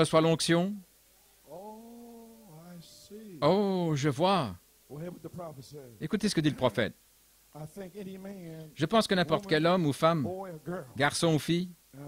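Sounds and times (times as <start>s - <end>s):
faint voice holding a vowel: 1.4s - 4.1s.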